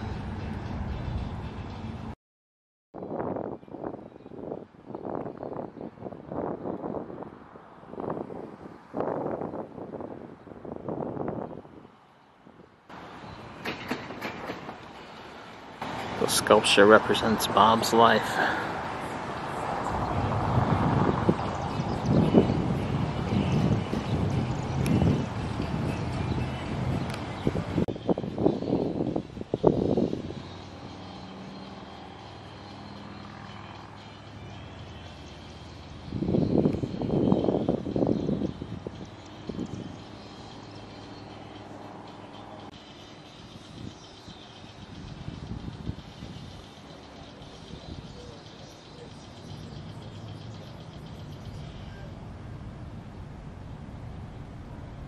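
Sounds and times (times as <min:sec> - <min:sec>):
engine drone: 0:00.0 - 0:02.1, 0:30.2 - 0:37.7, 0:38.4 - 0:55.0
rail cars clattering: 0:13.0 - 0:17.3
freight train rolling past: 0:13.0 - 0:17.6.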